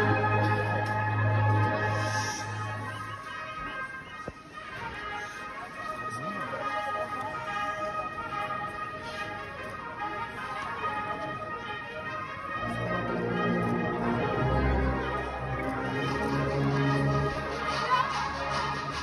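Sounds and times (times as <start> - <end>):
crowd voices: 0.0 - 19.0
processional band music: 0.0 - 19.0.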